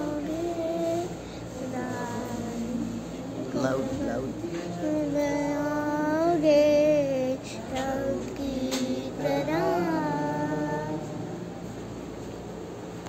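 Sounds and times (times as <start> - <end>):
girl singing: 0.0 - 11.2.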